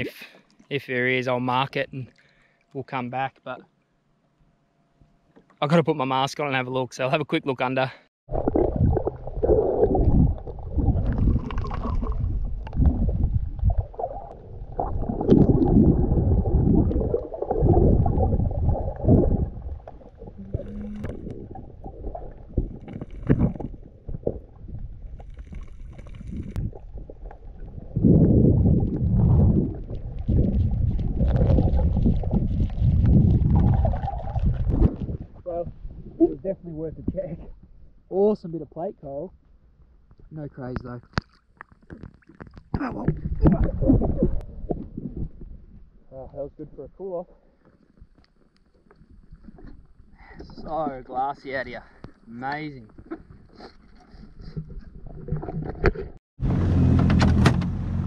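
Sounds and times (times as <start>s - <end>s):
muffled underwater rushing and bubbling: 8.3s - 36.2s, 42.8s - 46.1s, 52.9s - 56.2s.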